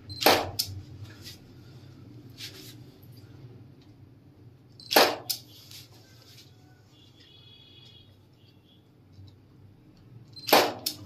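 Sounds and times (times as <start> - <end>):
loud sharp crack: 4.9 - 5.4, 10.5 - 11.0.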